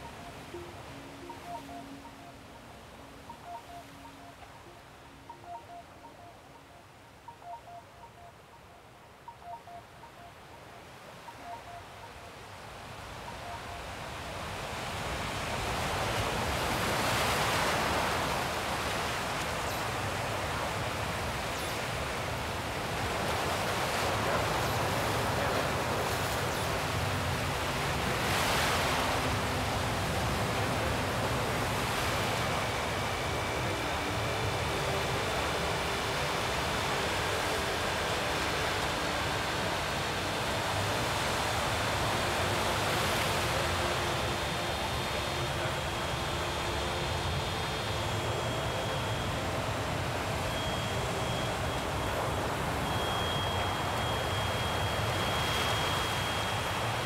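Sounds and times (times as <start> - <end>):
ambient washes of noise: 0.0 - 57.0
faint steady high tones: 0.0 - 57.0.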